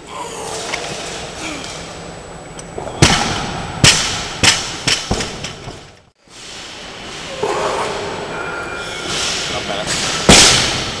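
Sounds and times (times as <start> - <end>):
barbell bouncing: 2.8 - 6.0
barbell crashing on platform: 3.0 - 5.9, 9.2 - 11.0.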